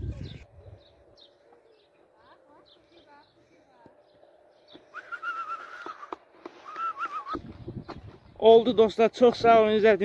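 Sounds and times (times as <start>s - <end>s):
faint bird chirp: 0.0s - 8.6s
person whistling wavering note: 4.9s - 7.4s.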